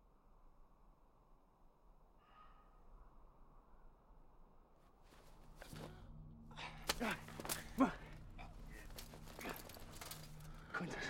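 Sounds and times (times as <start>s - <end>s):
armour and leaves rustling: 5.1s - 6.0s, 6.7s - 11.0s.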